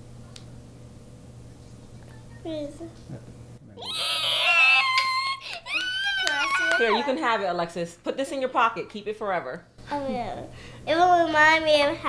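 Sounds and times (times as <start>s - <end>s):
girl squealing and laughing: 3.8s - 7.2s.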